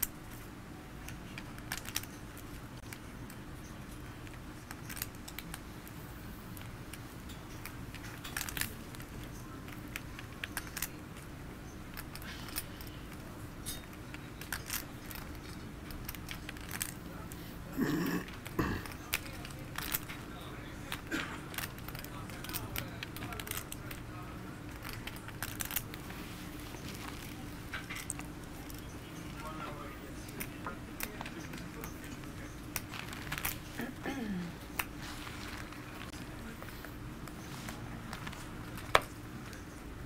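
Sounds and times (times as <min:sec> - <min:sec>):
poker chips clicking: 0:00.0 - 0:17.0, 0:18.0 - 0:26.1
low room murmur: 0:00.0 - 0:40.0.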